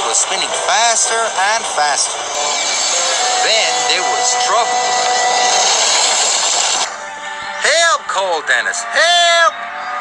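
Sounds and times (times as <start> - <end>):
loud hissing rush: 0.0 - 7.0.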